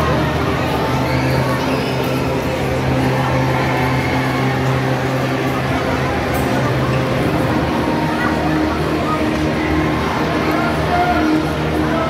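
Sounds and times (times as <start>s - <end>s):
murmur of spectators: 0.0s - 12.0s.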